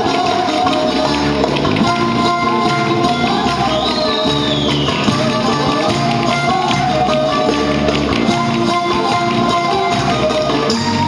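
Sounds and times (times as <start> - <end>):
long-necked lutes playing folk music: 0.0 - 11.0.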